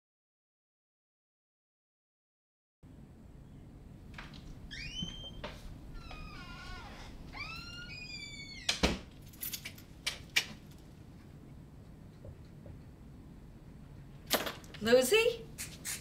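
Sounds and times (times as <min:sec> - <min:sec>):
door creaking: 0:04.1 - 0:09.8
door shutting with knock: 0:04.2 - 0:09.1
door unlocking and opening: 0:04.2 - 0:10.6.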